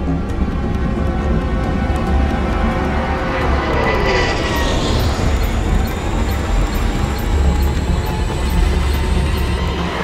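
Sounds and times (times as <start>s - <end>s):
orchestral film score: 0.0s - 10.0s
aircraft flyby: 0.1s - 10.0s.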